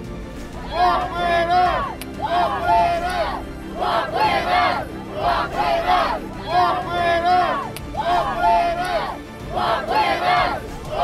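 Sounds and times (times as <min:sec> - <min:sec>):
crowd chanting in unison: 0:00.6 - 0:11.0.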